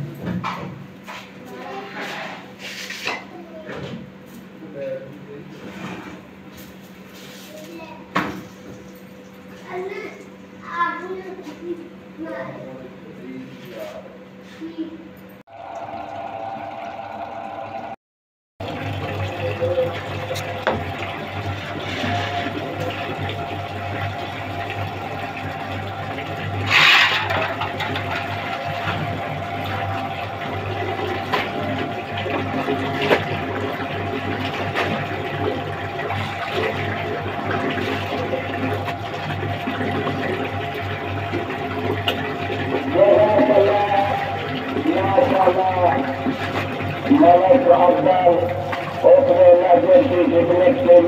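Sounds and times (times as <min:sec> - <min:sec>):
machine hum: 0:15.5 - 0:18.0, 0:18.6 - 0:51.0
tap water running: 0:15.5 - 0:18.0, 0:18.6 - 0:51.0
clothes rinsed by hand: 0:18.6 - 0:51.0.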